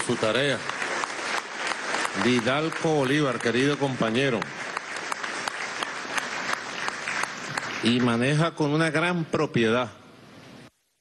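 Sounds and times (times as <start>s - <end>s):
audience applauding: 0.0s - 8.8s.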